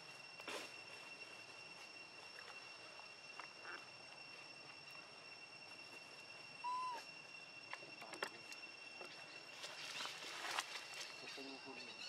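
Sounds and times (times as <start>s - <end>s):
high-pitched insect drone: 0.0s - 12.0s
whistled animal call: 6.6s - 7.1s.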